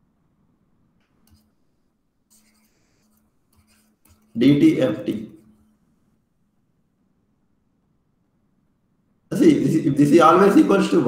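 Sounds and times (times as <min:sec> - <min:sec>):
pen scratching on tablet: 0:01.2 - 0:05.7.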